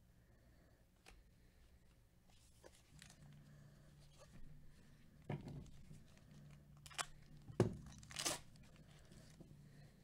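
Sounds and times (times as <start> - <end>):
foil wrapper ripping: 8.0 - 8.6.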